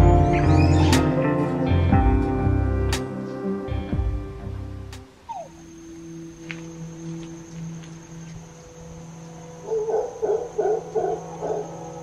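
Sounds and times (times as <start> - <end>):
faint steady drone: 1.2 - 12.0
animal hooting calls: 5.2 - 6.2, 9.6 - 11.8.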